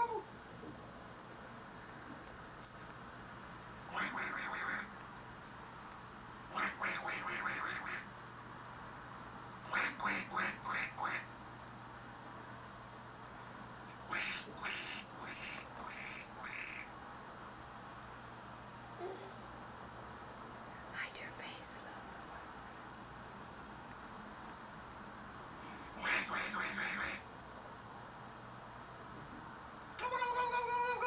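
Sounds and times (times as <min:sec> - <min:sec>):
person making quacking noises: 0:03.9 - 0:04.9, 0:06.5 - 0:08.1, 0:09.7 - 0:11.3, 0:26.0 - 0:27.2.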